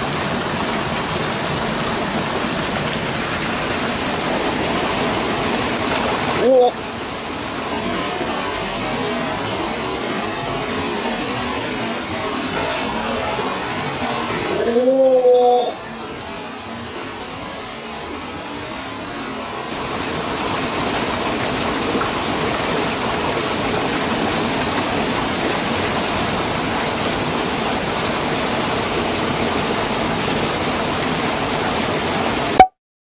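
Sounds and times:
flowing water rushing: 0:00.0 - 0:32.6.

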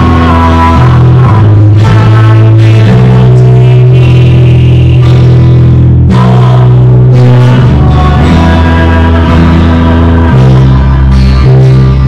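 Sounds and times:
band playing worship song: 0:00.0 - 0:12.0.

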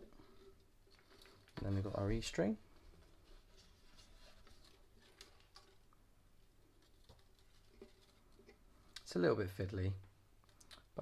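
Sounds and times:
fingers handling nylon strings: 0:00.0 - 0:09.2.

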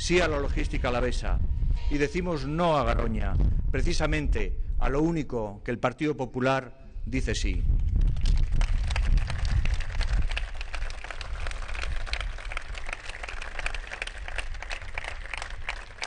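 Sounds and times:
crowd applauding: 0:08.2 - 0:16.0.

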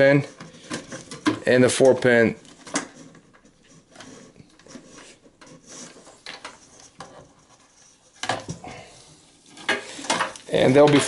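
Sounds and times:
cable rustling: 0:00.0 - 0:11.0.

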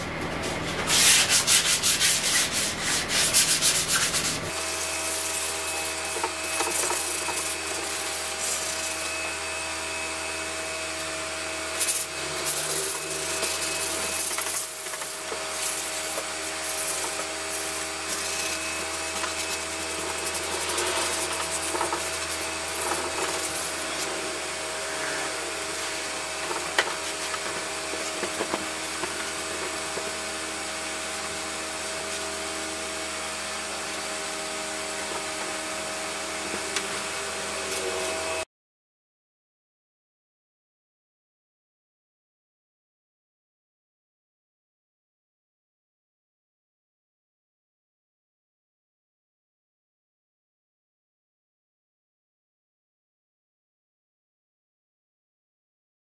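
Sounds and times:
sandpaper rubbing on metal: 0:00.8 - 0:09.1, 0:11.7 - 0:35.0
steady hum: 0:11.8 - 0:31.0.

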